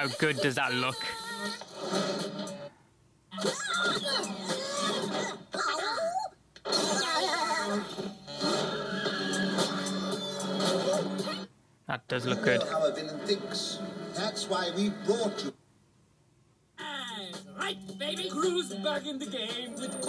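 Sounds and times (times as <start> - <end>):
cartoon character voices: 16.8 - 17.8.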